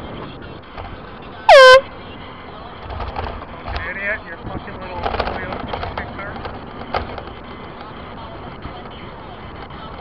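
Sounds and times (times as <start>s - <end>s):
low road noise: 0.0s - 10.0s
vehicle horn honk: 0.1s - 2.4s.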